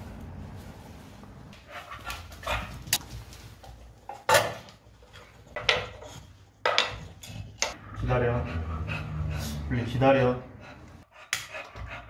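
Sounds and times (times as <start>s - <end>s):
dog breathing noisily: 8.1s - 12.0s.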